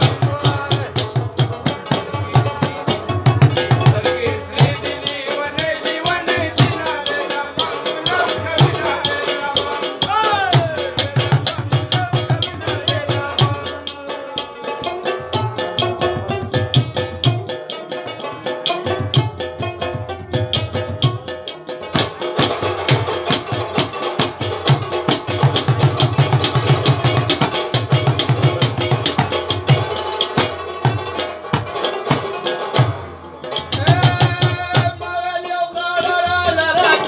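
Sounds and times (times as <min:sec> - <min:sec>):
fast hand drumming: 0:00.0 - 0:35.2
plucked string melody: 0:00.0 - 0:37.0.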